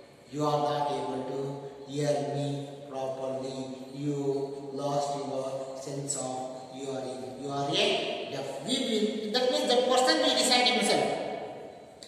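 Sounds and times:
man speaking in chant-like way: 0.3 - 9.0.

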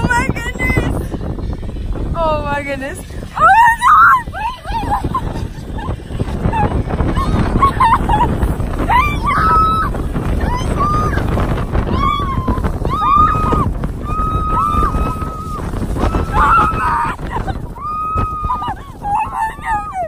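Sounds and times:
tube scraping over snow: 0.0 - 20.0
wind on microphone: 0.0 - 20.0
people squealing and screaming: 3.4 - 5.9, 6.5 - 20.0.

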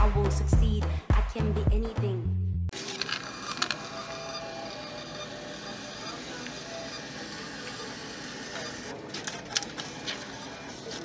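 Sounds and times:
store background hum: 2.7 - 11.0
thermal printer running: 2.7 - 11.0.

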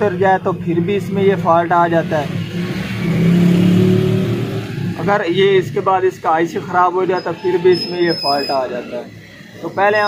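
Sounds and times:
vehicle engine droning: 0.0 - 10.0.

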